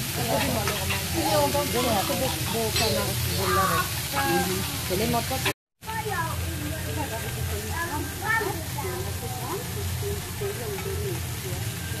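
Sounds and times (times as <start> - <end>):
food sizzling on a griddle: 0.0 - 12.0
people talking: 0.0 - 12.0.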